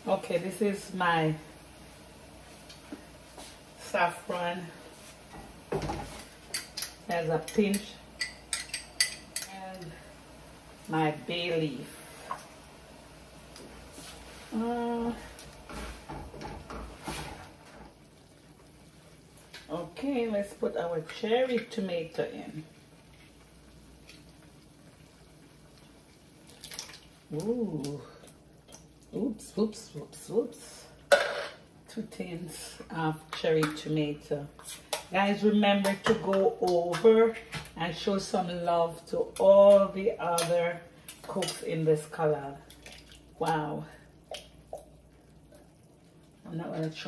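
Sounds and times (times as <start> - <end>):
faint steady hiss: 0.0 - 47.0.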